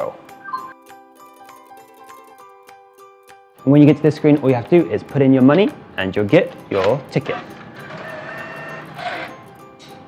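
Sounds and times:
background music: 0.0 - 10.0
vending machine whirring: 6.6 - 10.0.

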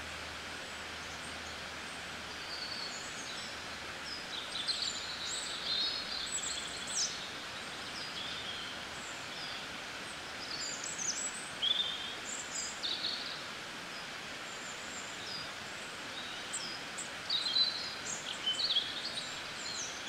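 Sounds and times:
steady background hiss: 0.0 - 20.0
small birds chirping and trilling: 0.8 - 20.0.

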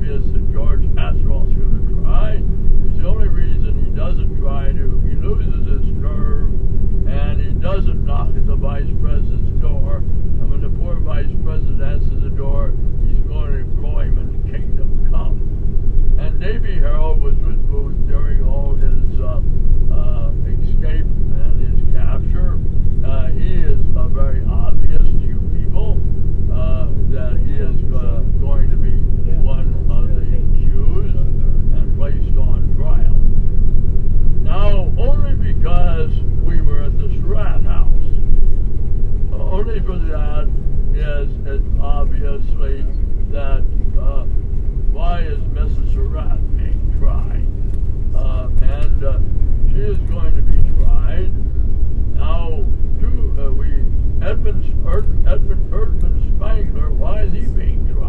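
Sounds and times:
person talking: 0.0 - 6.5, 7.1 - 15.4, 16.2 - 33.2, 34.4 - 38.4, 39.3 - 44.3, 44.9 - 47.5, 48.2 - 51.4, 52.2 - 58.0
vehicle engine drone: 0.0 - 58.0.

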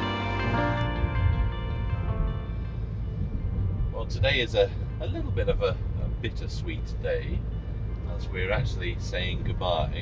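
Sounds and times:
car cabin road and engine rumble: 0.0 - 10.0
soft background music: 0.0 - 10.0.

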